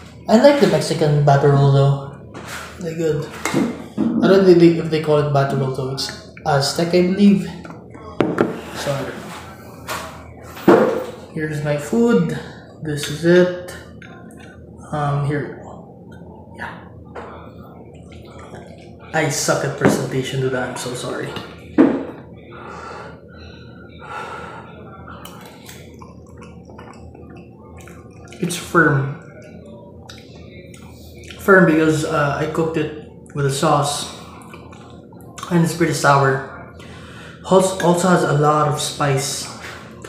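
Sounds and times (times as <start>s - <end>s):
person chewing food: 25.2s - 28.5s, 34.2s - 35.4s.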